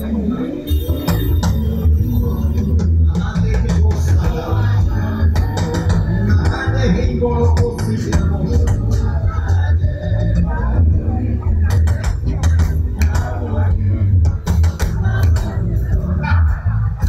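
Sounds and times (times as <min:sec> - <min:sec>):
heavy pulsing bass line: 0:00.0 - 0:17.0
live band playing upbeat groove: 0:00.6 - 0:17.0
drum hits: 0:11.5 - 0:15.7.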